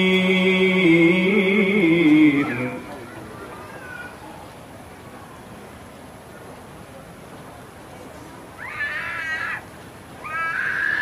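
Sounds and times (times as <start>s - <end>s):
man reciting melismatic chant: 0.0s - 3.3s.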